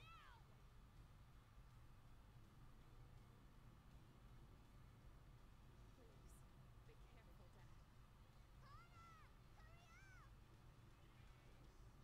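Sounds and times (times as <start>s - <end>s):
faint cat meow: 0.0s - 0.4s
low room hum: 0.0s - 12.0s.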